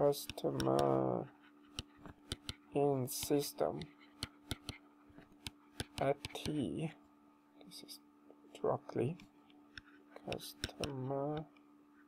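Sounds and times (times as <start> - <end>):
faint steady hum: 0.0 - 12.0
stylus tapping on tablet: 0.2 - 0.9, 1.7 - 6.6, 9.7 - 11.4.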